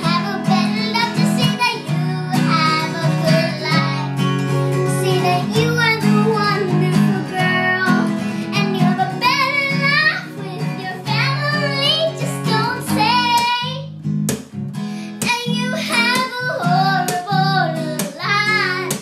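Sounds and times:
girl singing: 0:00.0 - 0:14.0, 0:15.0 - 0:19.0
strummed acoustic guitar: 0:00.0 - 0:19.0.

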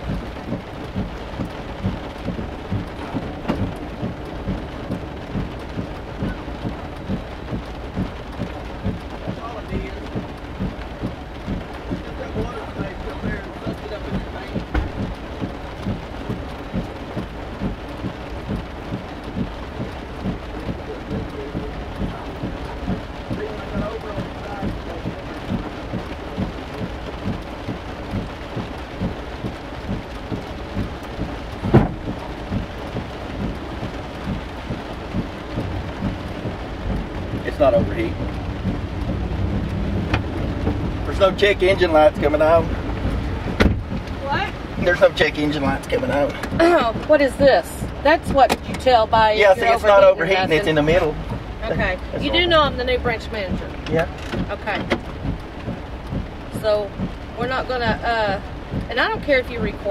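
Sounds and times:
engine rumble inside car cabin: 0:00.0 - 0:59.9
knock: 0:14.6 - 0:15.1, 0:31.7 - 0:32.0, 0:43.6 - 0:43.9.

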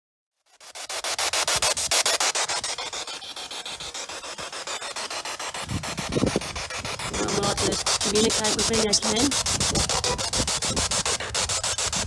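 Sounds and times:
pulsing radio static hiss: 0:00.6 - 0:12.0.

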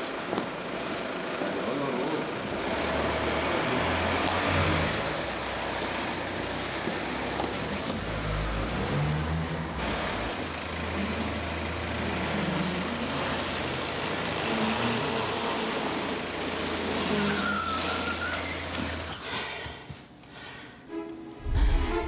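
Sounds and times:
car engine running: 0:02.5 - 0:19.1.

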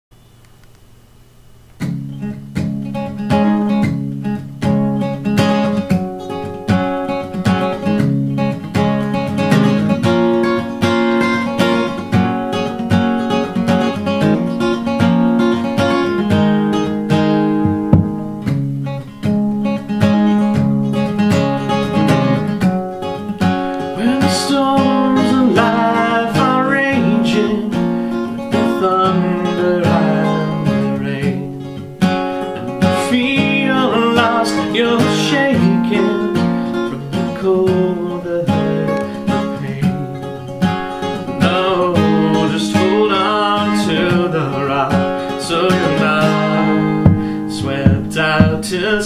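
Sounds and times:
acoustic guitar picked chords: 0:01.2 - 0:49.0.

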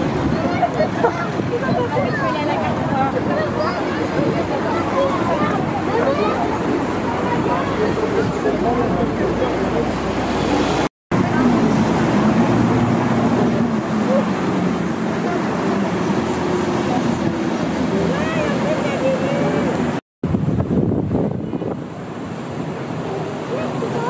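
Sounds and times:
faint voices: 0:00.0 - 0:20.0, 0:21.4 - 0:24.0
traffic: 0:00.0 - 0:24.0.

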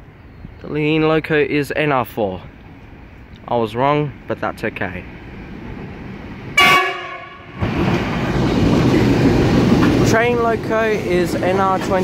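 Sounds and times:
train engine and wheels passing: 0:00.0 - 0:12.0
locomotive horn blast: 0:06.6 - 0:07.7.

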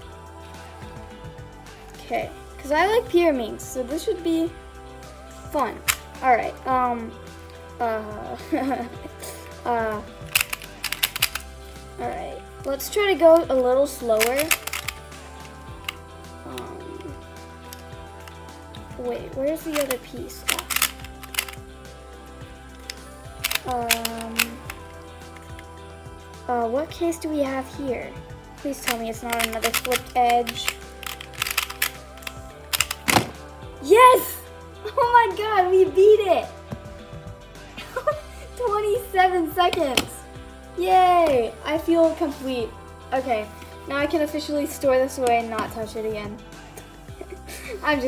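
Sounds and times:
puzzle cube clicking as twisted: 0:10.2 - 0:11.5, 0:14.1 - 0:15.1, 0:19.7 - 0:21.6, 0:22.8 - 0:25.6, 0:28.8 - 0:33.4.

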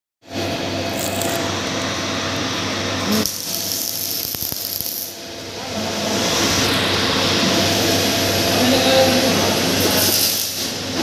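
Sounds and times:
grinding machine whirring: 0:00.3 - 0:11.0.

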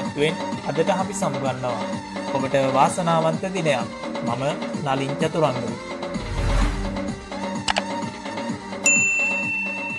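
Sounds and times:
background music: 0:00.0 - 0:09.9
mouse click: 0:07.6 - 0:07.9
bright bell ding: 0:08.8 - 0:09.9.

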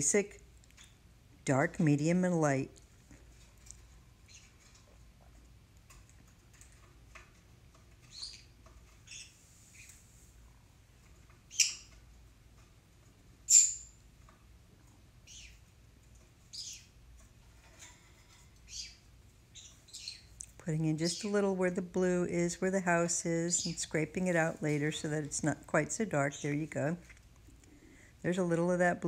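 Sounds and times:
pet birds chirping: 0:00.1 - 0:01.0, 0:03.6 - 0:04.9, 0:07.8 - 0:10.0, 0:11.3 - 0:12.1, 0:13.4 - 0:14.0, 0:15.2 - 0:17.0, 0:17.6 - 0:27.2.

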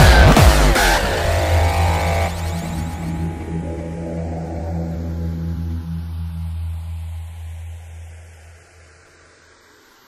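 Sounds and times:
low bass drone: 0:00.0 - 0:09.8
electronic music: 0:00.0 - 0:10.0.

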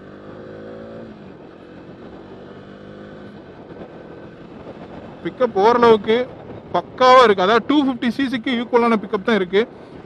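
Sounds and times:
motorcycle engine accelerating: 0:00.0 - 0:07.0.

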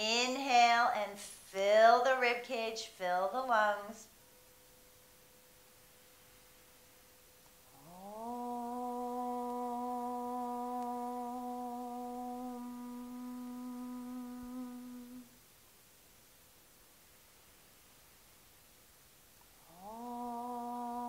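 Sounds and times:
woman chanting om: 0:00.0 - 0:04.2, 0:07.6 - 0:15.4, 0:19.6 - 0:21.0.

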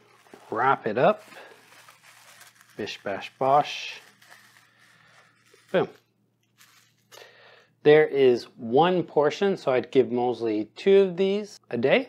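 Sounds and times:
plastic film rustling and crinkling: 0:00.0 - 0:07.3.

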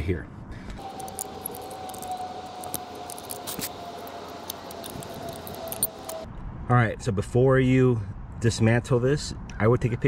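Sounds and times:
screwdriver clicking and scraping metal: 0:00.8 - 0:06.3
steady thin whine: 0:00.8 - 0:06.3.

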